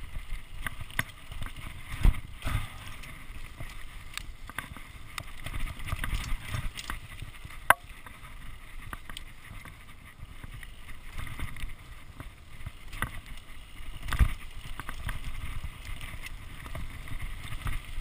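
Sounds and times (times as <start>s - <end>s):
bike chain rattling: 0.0s - 18.0s
bike tyres rolling on dirt: 0.0s - 18.0s.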